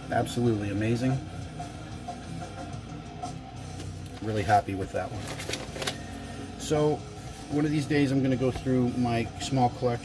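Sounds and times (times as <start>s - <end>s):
metal concert music on television: 0.0s - 10.0s.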